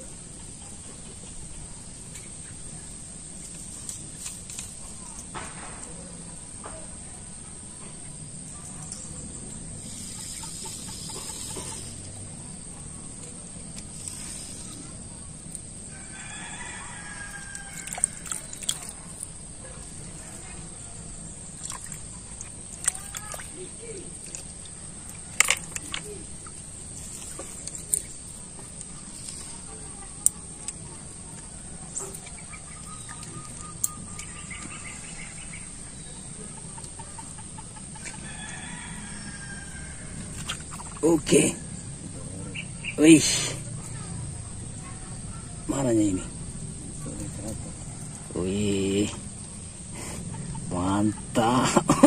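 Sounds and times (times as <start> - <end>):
constant high whine: 0.0 - 52.0
long bird calls: 7.8 - 12.2, 15.8 - 51.7.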